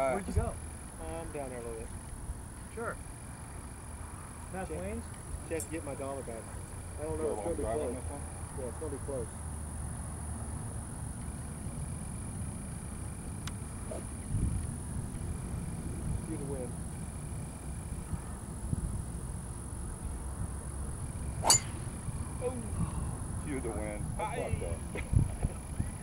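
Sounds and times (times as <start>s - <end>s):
golf driver striking ball: 21.4s - 22.1s.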